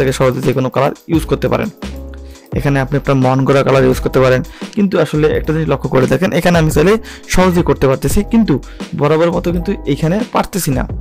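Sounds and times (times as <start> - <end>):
background music: 0.0 - 11.0
person speaking: 0.0 - 11.0.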